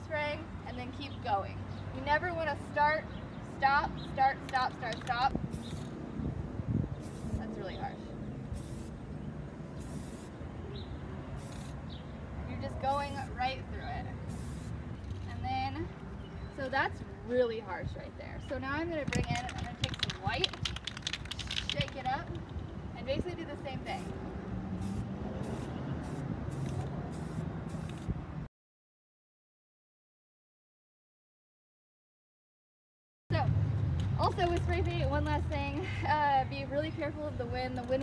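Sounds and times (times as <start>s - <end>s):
spray paint can hissing: 4.5s - 6.0s, 6.9s - 7.6s, 8.5s - 9.1s, 9.7s - 10.4s, 11.4s - 11.9s, 12.8s - 13.3s, 14.2s - 15.2s, 19.0s - 22.5s, 23.8s - 24.2s, 24.8s - 28.2s
aerosol spray can hissing: 5.5s - 6.0s, 7.0s - 7.4s, 8.5s - 9.0s, 9.8s - 10.4s, 11.4s - 11.8s, 14.3s - 14.8s, 24.8s - 28.1s.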